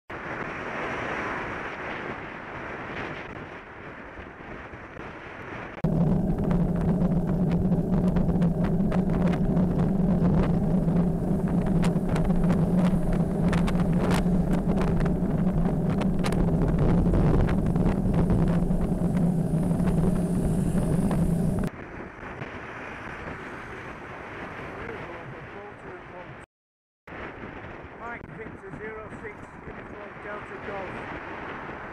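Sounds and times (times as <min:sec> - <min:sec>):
bicycle road noise: 0:00.1 - 0:26.2
wind noise: 0:00.1 - 0:26.4, 0:27.1 - 0:31.9
low drone with clicks: 0:05.8 - 0:21.7.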